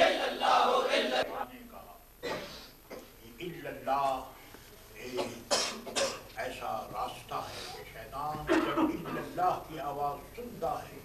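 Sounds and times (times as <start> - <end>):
person coughing: 2.2 - 3.1, 5.2 - 6.2, 8.5 - 9.3.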